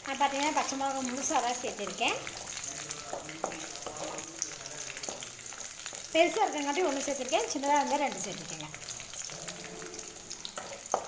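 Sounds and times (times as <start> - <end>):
vegetables sizzling in hot oil: 0.0 - 11.0.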